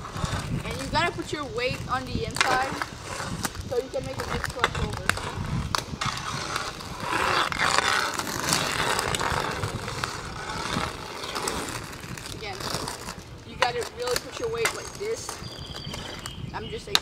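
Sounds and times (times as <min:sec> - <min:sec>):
skate wheels rolling on asphalt: 0:00.0 - 0:17.0.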